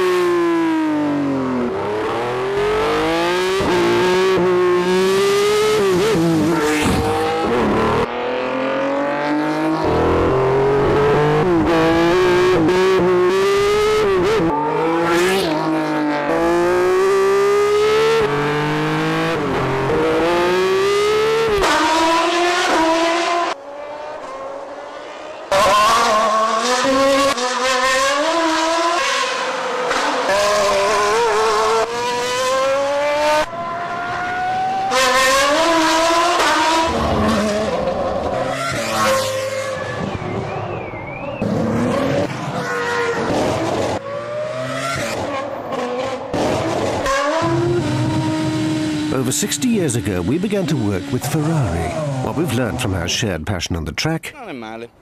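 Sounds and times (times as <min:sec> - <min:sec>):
racing car engines at high revs: 0:00.0 - 0:53.8.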